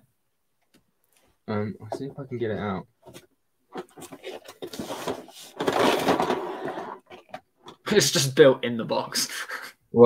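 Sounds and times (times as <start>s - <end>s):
cardboard rustling scrape: 3.8s - 7.4s.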